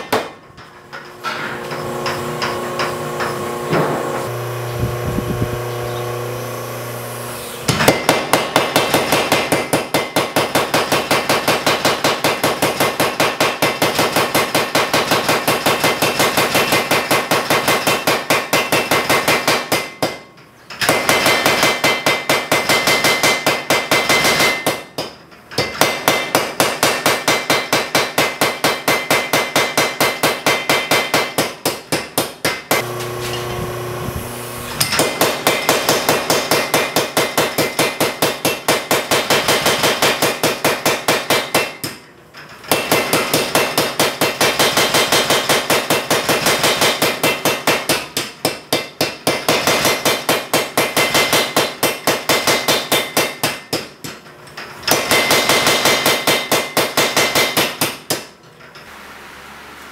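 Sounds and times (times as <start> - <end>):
steady machine hum: 0.0 - 10.4, 32.7 - 39.5
power hammer striking hot steel: 7.5 - 42.1, 42.7 - 54.2, 54.8 - 58.3.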